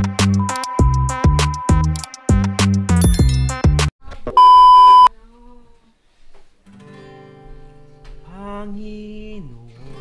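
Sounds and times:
loud electronic beep: 0:00.4 - 0:02.0.

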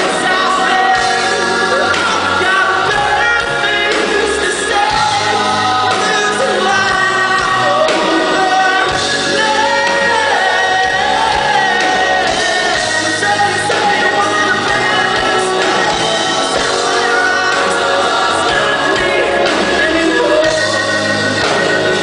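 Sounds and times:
bass line: 0:00.0 - 0:22.0
electric guitars: 0:00.0 - 0:22.0
keyboard: 0:00.0 - 0:22.0
man singing lead vocal: 0:00.0 - 0:22.0.

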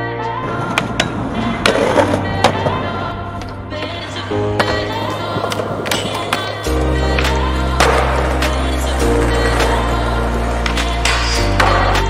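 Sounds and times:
skateboard grinding metal rail: 0:04.6 - 0:12.0.

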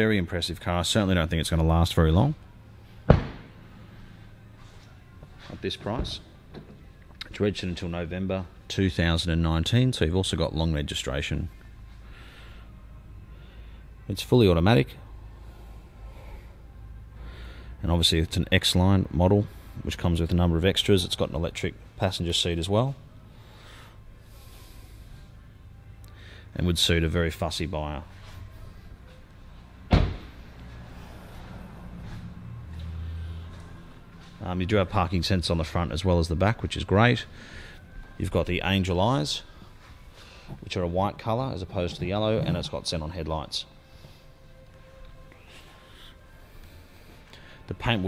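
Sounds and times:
low steady hum: 0:00.0 - 0:48.0
low hum: 0:21.6 - 0:40.9
car door shutting: 0:29.9 - 0:30.4.

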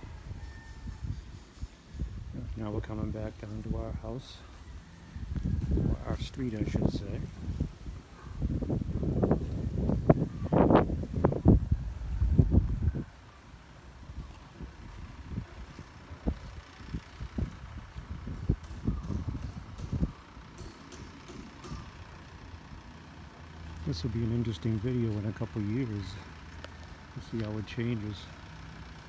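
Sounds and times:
low rumbling on microphone: 0:05.2 - 0:13.2, 0:14.0 - 0:20.2.

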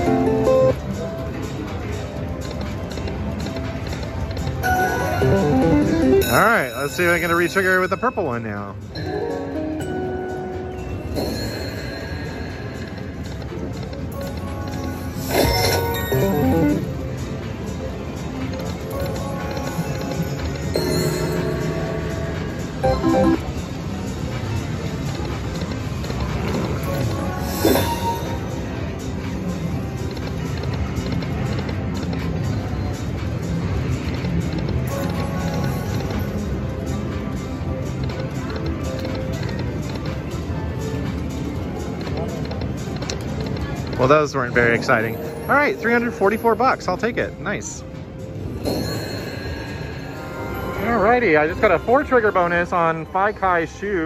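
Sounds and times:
slot machine bonus music: 0:00.0 - 0:01.0, 0:04.5 - 0:17.8, 0:18.5 - 0:24.4, 0:26.6 - 0:29.1, 0:34.9 - 0:37.4, 0:44.0 - 0:53.2
reel-stop and win sounds: 0:04.6 - 0:08.7, 0:15.2 - 0:16.9, 0:19.0 - 0:23.8.

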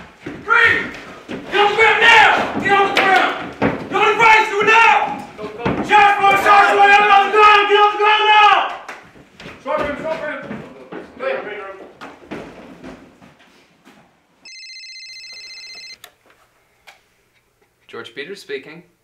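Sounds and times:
raised voices: 0:00.3 - 0:08.8
electronic telephone ring: 0:14.4 - 0:16.0.

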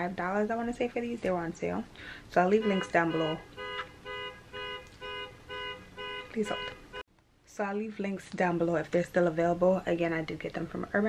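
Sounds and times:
car horn honking: 0:02.5 - 0:07.0.

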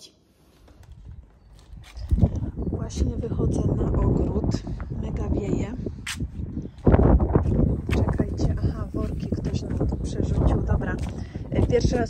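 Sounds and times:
wind buffeting microphone: 0:00.7 - 0:12.0
footsteps on concrete paving: 0:04.1 - 0:12.0.

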